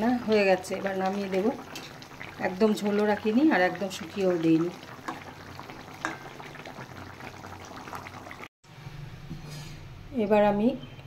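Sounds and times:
curry bubbling in a pan: 0.0s - 8.5s.

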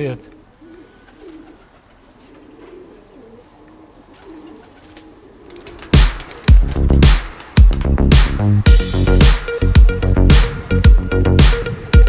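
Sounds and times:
pigeons cooing: 0.0s - 6.7s
music: 5.9s - 12.0s.

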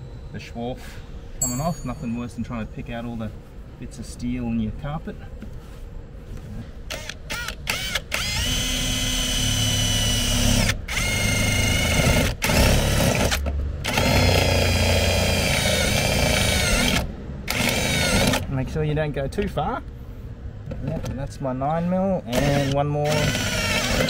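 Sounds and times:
cordless drill cutting sheet steel: 6.9s - 18.4s, 22.3s - 24.0s.

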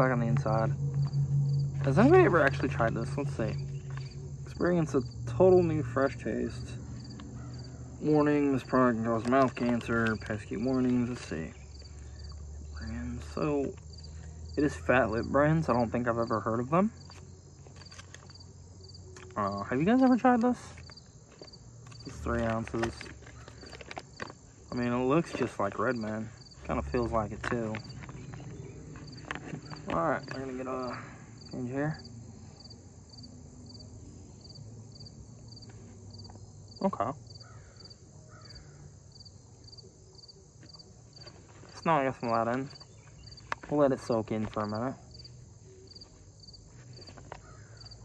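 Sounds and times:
steady high buzz: 0.0s - 9.2s
cricket chirping: 0.0s - 48.0s.

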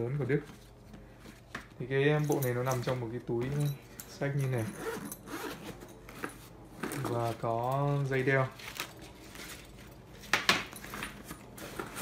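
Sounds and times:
zipper being pulled open: 4.6s - 6.3s.

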